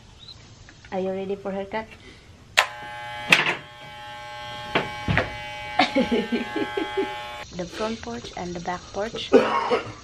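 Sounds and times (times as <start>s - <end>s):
electric hair clippers buzzing: 2.6s - 7.5s
sharp knocks: 4.7s - 5.4s.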